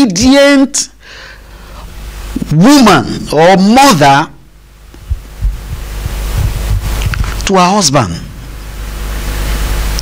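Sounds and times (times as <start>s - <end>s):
steady hiss: 0.1s - 10.0s
microphone handling thumps: 4.9s - 7.5s.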